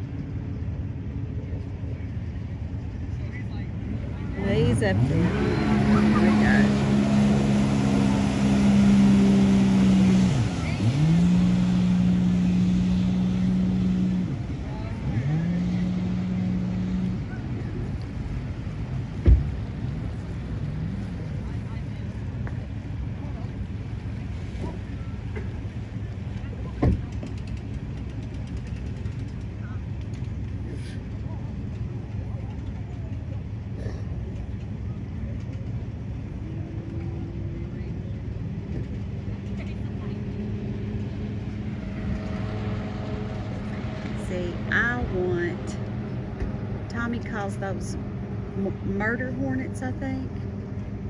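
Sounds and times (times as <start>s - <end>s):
jet ski engine running: 0.0s - 51.0s.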